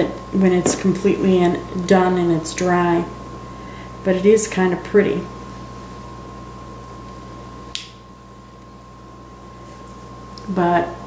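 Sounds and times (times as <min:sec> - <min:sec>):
sharp click: 0:07.7 - 0:08.0.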